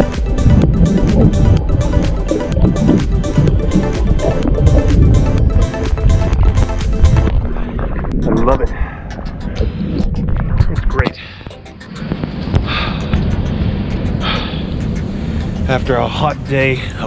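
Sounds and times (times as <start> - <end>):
water sloshing against camera: 0.0 - 8.6
heavy low rumble: 0.0 - 17.0
music: 0.0 - 17.0.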